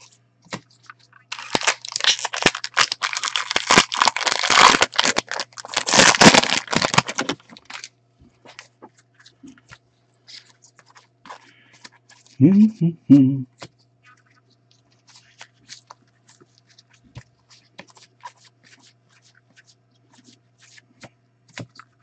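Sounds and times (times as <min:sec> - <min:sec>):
foil wrapper tearing and crinkling: 0:00.6 - 0:07.9.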